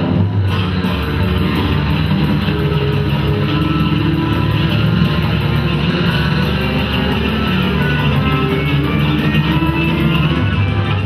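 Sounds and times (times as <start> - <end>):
amplified electric guitar: 0.0 - 11.0
live rock band music: 0.0 - 11.0.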